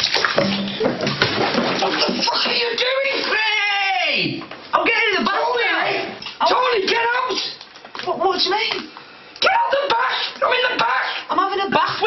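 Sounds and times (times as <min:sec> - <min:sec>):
water splashing in bathtub: 0:00.0 - 0:12.0.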